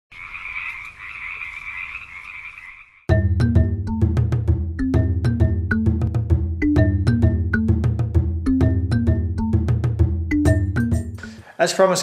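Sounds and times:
chorus of frogs calling: 0:00.1 - 0:03.1.

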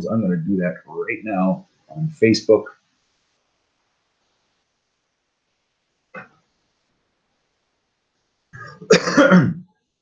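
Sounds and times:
man clearing his throat: 0:08.6 - 0:09.6.

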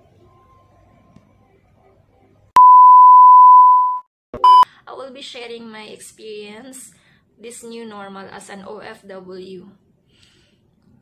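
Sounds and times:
loud electronic beep: 0:02.6 - 0:04.6.

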